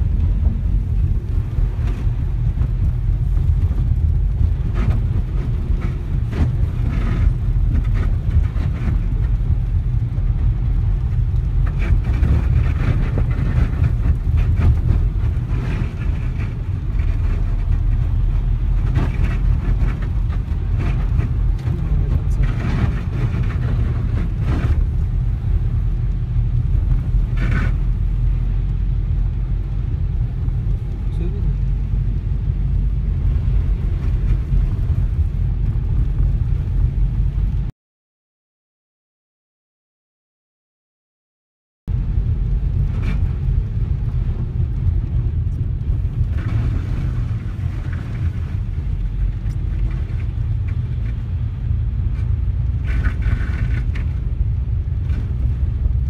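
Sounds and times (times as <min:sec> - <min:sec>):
car engine and tyres rumbling: 0:00.0 - 0:37.7, 0:41.9 - 0:56.0.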